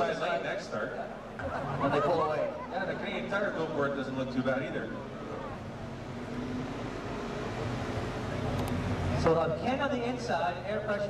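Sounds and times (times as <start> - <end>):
car engines droning: 0.0 - 11.0.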